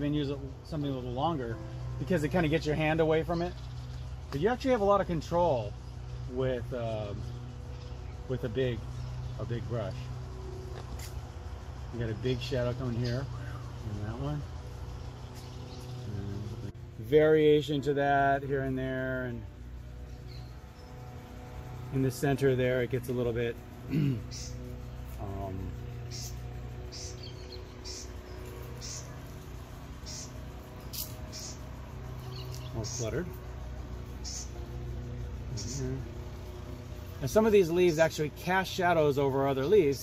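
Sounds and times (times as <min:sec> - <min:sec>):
low background rumble: 0:00.0 - 0:40.0
low steady hum: 0:00.0 - 0:40.0
small bird chirping: 0:00.0 - 0:40.0.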